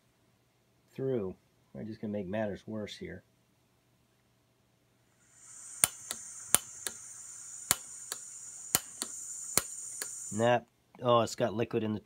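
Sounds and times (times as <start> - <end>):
gas hissing from stove burner: 5.2 - 10.5
stove igniter clicking: 5.4 - 10.4.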